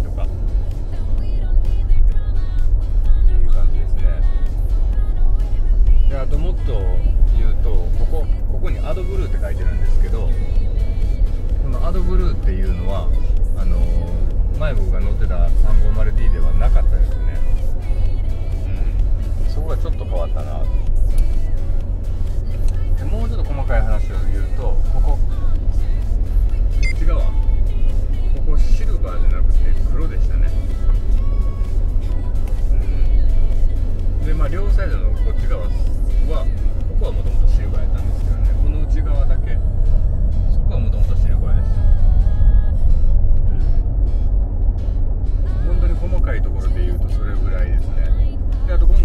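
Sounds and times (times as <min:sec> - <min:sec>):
background music with singing: 0:00.0 - 0:49.0
road and drivetrain rumble: 0:00.0 - 0:49.0.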